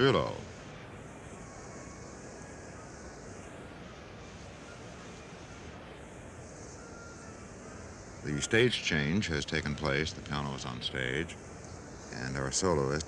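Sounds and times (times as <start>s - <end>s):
tape hiss: 0.0s - 13.0s.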